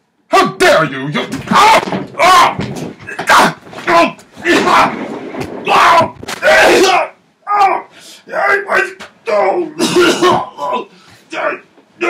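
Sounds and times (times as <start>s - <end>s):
man grunting and crying out: 9.3s - 11.6s.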